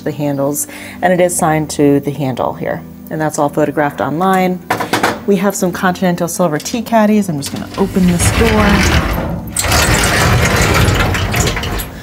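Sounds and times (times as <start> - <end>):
sliding glass door rollers rattling: 7.2 - 12.0.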